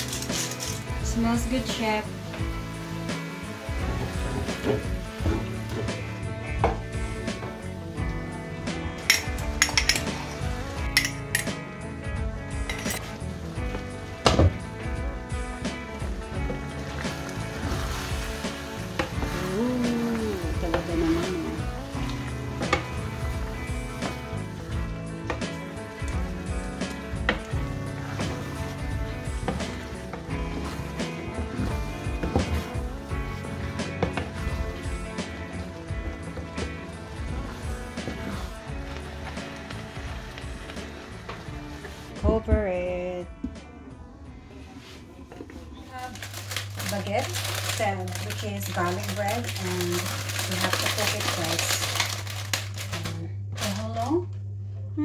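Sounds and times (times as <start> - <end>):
wooden spatula scraping frying pan: 0.0 - 7.7, 16.2 - 21.6, 26.8 - 42.2
guitar background music: 0.0 - 54.2.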